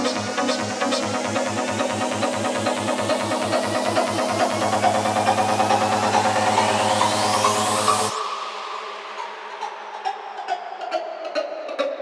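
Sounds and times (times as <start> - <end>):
low bass drone under synths: 0.0 - 8.8
psytrance with rolling bass line: 0.0 - 12.0.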